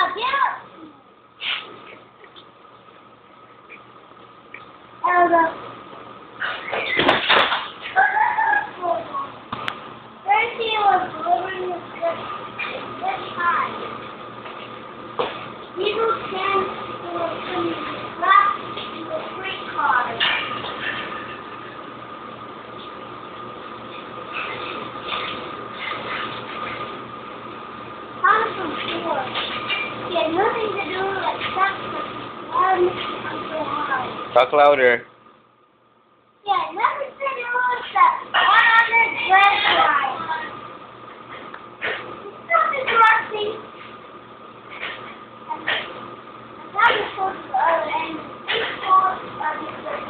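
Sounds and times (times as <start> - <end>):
faint hum: 0.0 - 50.0
young child vocalising: 7.9 - 8.9.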